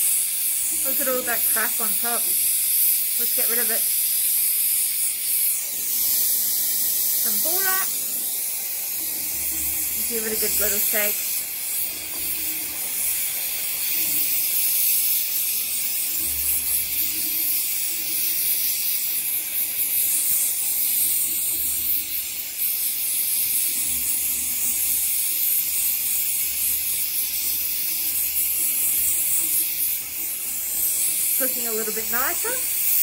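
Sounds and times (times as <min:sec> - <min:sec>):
torch flame hissing: 0:00.0 - 0:33.0.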